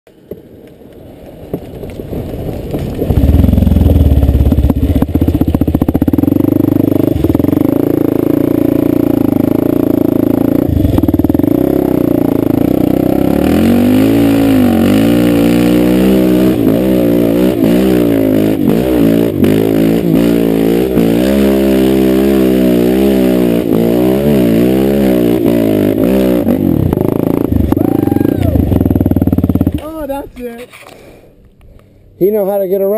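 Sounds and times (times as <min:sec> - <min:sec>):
dirt bike engine revving: 0:03.2 - 0:30.2.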